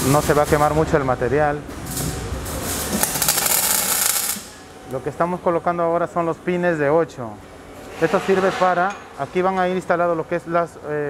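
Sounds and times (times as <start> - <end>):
welding arc crackling: 0.0 - 0.9, 1.7 - 5.0.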